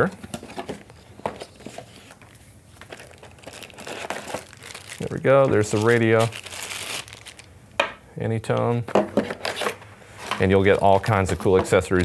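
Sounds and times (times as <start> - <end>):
plastic bag crinkling: 1.3 - 7.6.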